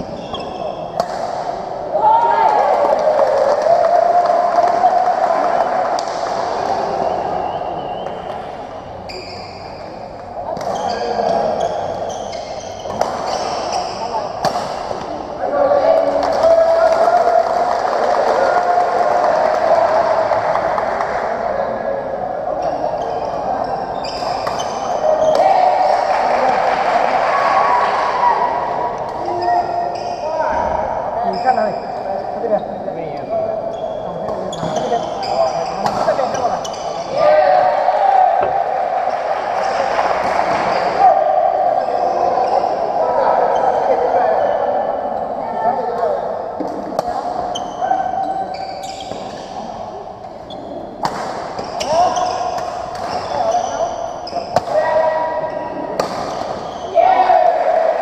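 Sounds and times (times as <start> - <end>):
crowd chatter: 0.0 - 58.0.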